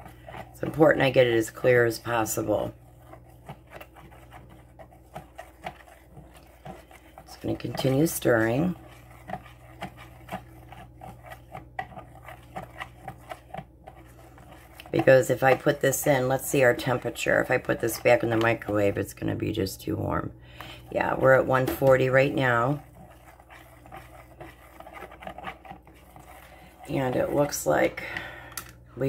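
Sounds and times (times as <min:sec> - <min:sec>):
stir stick scraping plastic cup: 0:00.0 - 0:19.8, 0:20.5 - 0:28.3.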